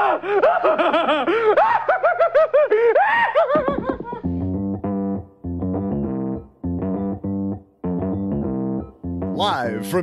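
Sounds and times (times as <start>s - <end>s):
high-pitched giggling laughter: 0.3s - 4.3s.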